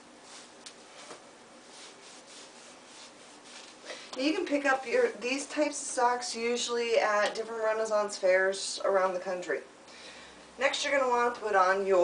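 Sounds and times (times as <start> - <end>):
sock rubbing on fabric: 0.2 - 3.8.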